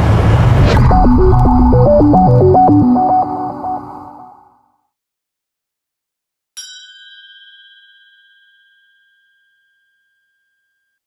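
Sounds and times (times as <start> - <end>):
bell chime: 6.6 - 11.0.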